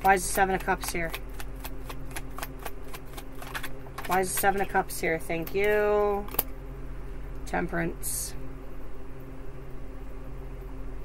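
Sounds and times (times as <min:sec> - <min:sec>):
cards riffling: 0:00.0 - 0:04.7.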